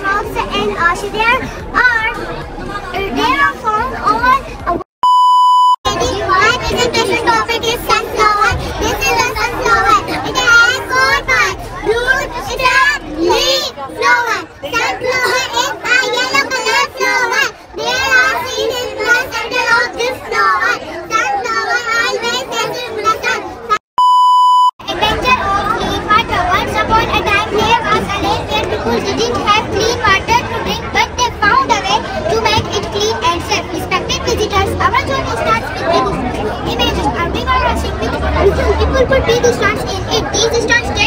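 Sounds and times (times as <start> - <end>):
children talking: 0.0 - 4.8, 5.9 - 23.8, 24.8 - 41.0
test tone beep: 5.0 - 5.8, 24.0 - 24.7.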